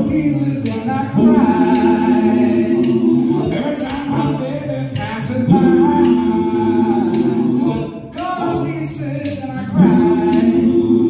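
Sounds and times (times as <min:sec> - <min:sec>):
bass: 0:00.0 - 0:11.0
drums: 0:00.0 - 0:11.0.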